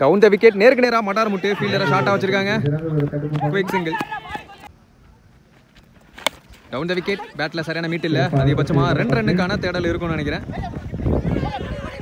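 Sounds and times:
man calling out: 1.1 - 4.5.

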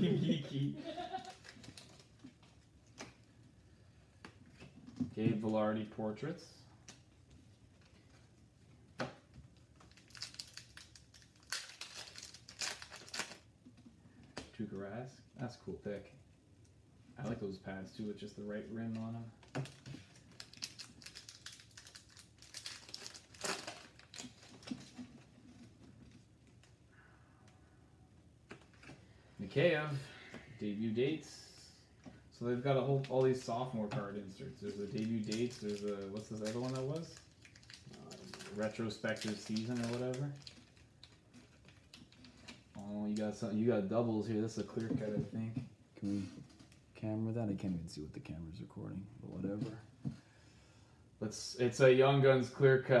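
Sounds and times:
person laughing: 0.0 - 1.4
plastic wrapper crinkling and tearing: 0.9 - 3.3, 9.5 - 13.5, 18.9 - 26.8, 32.8 - 33.7, 34.4 - 43.5.

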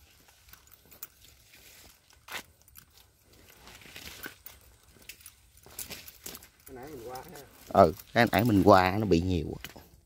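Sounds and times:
footsteps on dry mud: 0.0 - 10.0.

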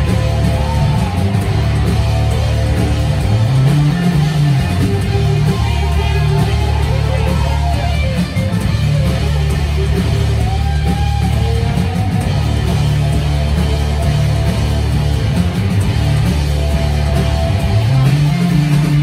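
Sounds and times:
bass guitar: 0.0 - 19.0
distorted electric guitar: 0.0 - 19.0
drums: 0.0 - 19.0.

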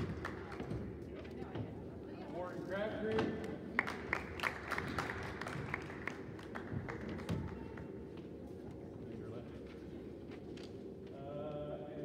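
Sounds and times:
audience clapping in a gym: 0.0 - 0.9, 3.4 - 8.1.

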